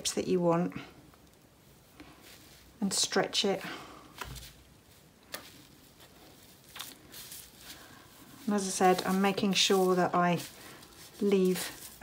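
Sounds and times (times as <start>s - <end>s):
bubble wrap crinkling: 1.2s - 12.0s
hands patting wool fibre: 1.2s - 12.0s.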